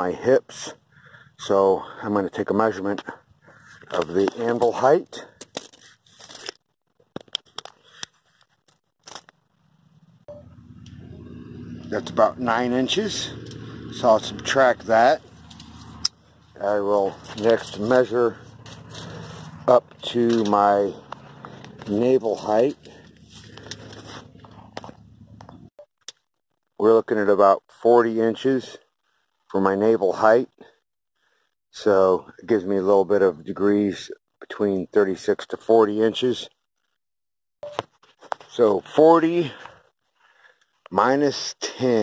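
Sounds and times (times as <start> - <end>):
metal tape measure clicks and scrapes: 5.4 - 6.6
low engine hum: 9.8 - 25.7
rustling handling noise: 15.2 - 25.7.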